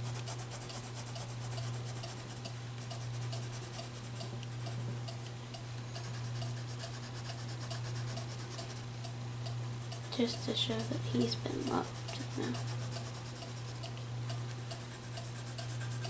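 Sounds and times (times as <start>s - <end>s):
steady low hum: 0.0s - 16.0s
crayon scratching on paper: 0.1s - 2.4s, 6.0s - 8.8s, 10.0s - 13.8s.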